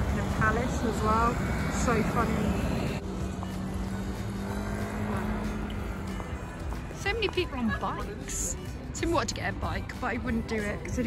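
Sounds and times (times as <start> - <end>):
street traffic: 0.0 - 11.0.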